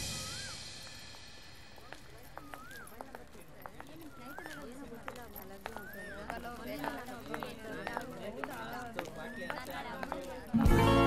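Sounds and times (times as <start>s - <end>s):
whistled calls: 0.0s - 1.2s, 2.2s - 5.0s, 5.6s - 7.0s, 9.1s - 10.0s
faint voices: 0.0s - 11.0s.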